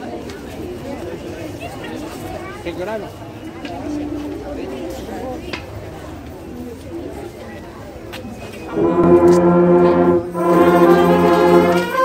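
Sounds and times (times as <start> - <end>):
murmur of voices: 0.0 - 12.0
marching band brass chord: 8.7 - 12.0.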